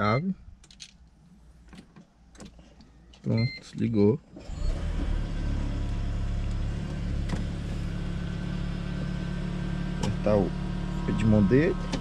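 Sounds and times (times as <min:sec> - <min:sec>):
car engine starting and idling: 0:01.8 - 0:12.0.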